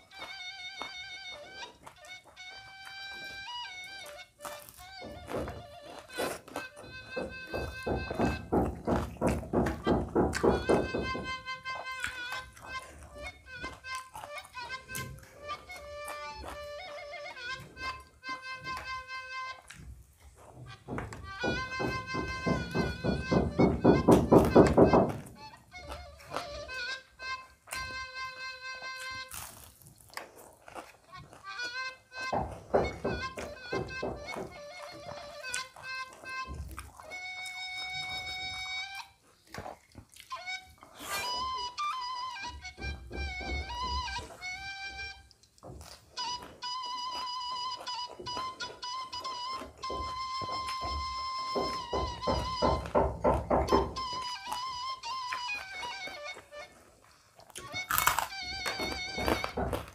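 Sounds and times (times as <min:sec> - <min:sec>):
knocking and banging from building work: 0:06.5 - 0:12.4, 0:20.4 - 0:26.6, 0:32.2 - 0:36.8, 0:42.4 - 0:45.0, 0:48.2 - 0:54.4, 0:58.5 - 0:59.9
background music: 0:57.5 - 0:59.9.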